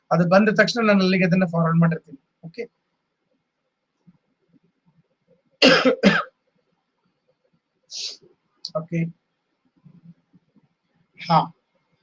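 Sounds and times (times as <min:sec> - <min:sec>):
man coughing: 0:05.6 - 0:06.3.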